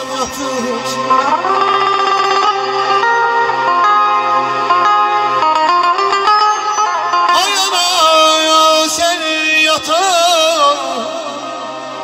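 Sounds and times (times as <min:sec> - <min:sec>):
electric guitar tremolo melody: 0:00.0 - 0:12.0.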